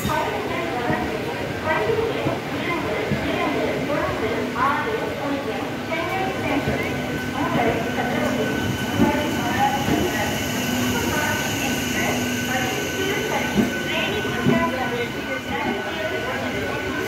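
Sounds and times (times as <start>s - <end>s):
crowd chatter: 0.0s - 17.0s
train rolling with steady hum: 0.0s - 17.0s.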